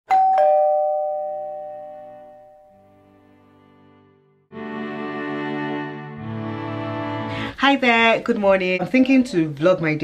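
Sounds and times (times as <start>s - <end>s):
ding-dong doorbell chime: 0.1s - 3.1s.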